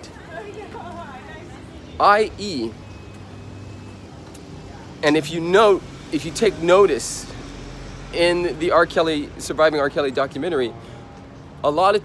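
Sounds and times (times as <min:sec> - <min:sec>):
low rumble of road traffic: 0:00.0 - 0:12.0.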